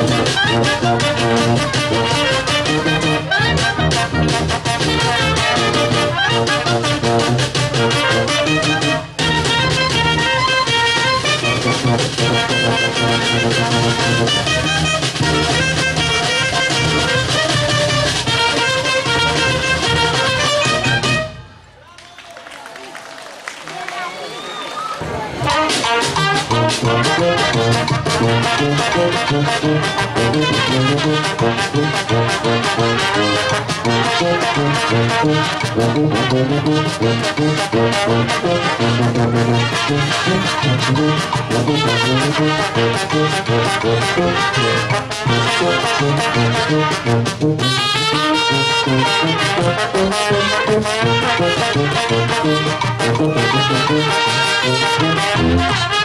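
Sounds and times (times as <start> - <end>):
brass band playing: 0.0 - 21.6, 25.0 - 56.0.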